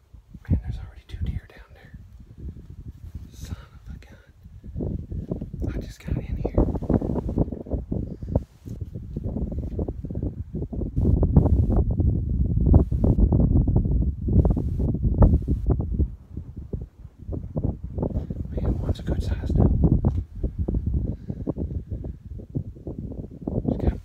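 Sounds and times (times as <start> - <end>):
wind buffeting microphone: 0.0 - 24.0.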